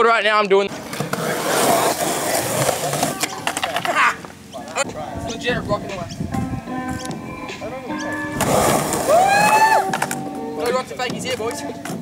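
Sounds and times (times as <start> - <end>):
skateboard wheels rolling on concrete: 0.5 - 12.0.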